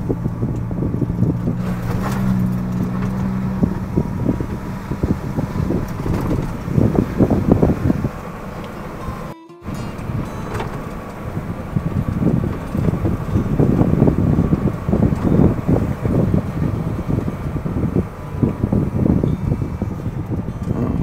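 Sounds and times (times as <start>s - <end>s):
vehicle rumbling on dirt trail: 0.0s - 21.0s.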